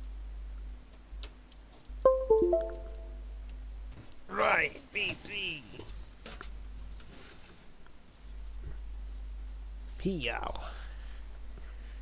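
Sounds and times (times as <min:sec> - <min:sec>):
electronic chime: 0:02.1 - 0:03.2.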